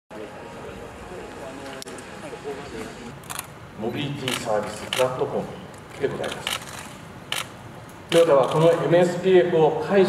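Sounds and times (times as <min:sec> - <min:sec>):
man speaking: 0:00.1 - 0:03.2
faint voices in a hall: 0:00.1 - 0:06.8
camera shutter clicking: 0:04.2 - 0:05.2, 0:06.2 - 0:07.6.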